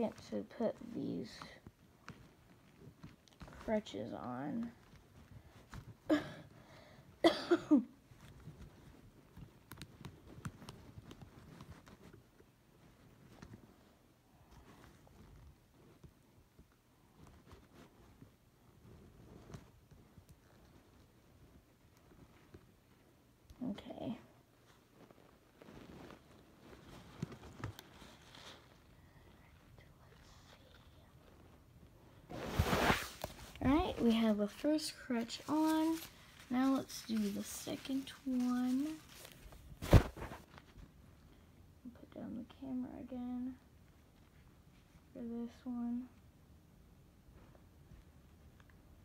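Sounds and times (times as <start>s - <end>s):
phone rustling against fabric: 0.0s - 6.1s, 8.0s - 41.3s
person coughing: 6.1s - 6.5s, 7.2s - 8.0s.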